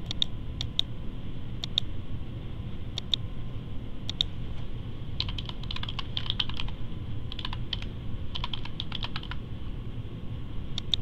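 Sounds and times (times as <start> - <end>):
computer keyboard typing: 5.2 - 9.4.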